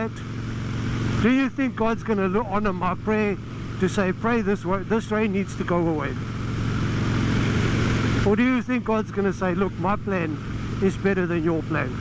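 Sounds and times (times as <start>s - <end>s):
motorcycle engine hum: 0.0s - 12.0s.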